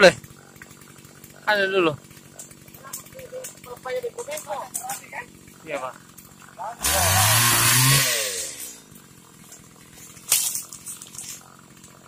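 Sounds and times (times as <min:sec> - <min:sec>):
small petrol engine idling: 0:00.0 - 0:12.0.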